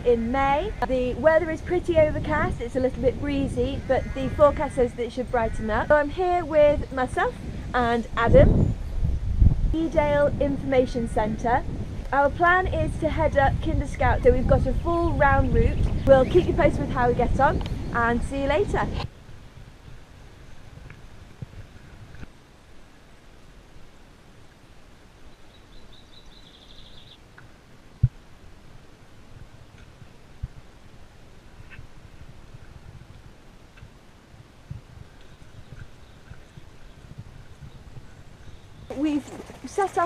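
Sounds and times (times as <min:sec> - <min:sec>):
bird trilling: 0:25.7 - 0:27.2.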